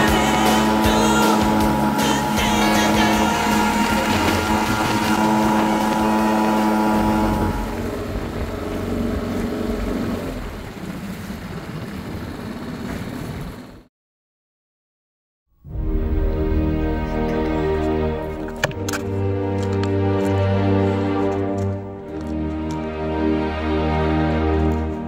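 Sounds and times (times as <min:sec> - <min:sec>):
held music chord: 0:00.0 - 0:09.1, 0:15.6 - 0:25.0
motorboat engine running: 0:00.0 - 0:13.9
water and wind noise: 0:00.0 - 0:13.9.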